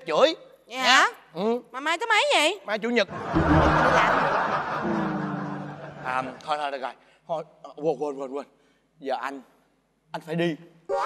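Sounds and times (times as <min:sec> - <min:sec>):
audience laughter: 0:03.1 - 0:06.4
low held tone: 0:03.3 - 0:05.8.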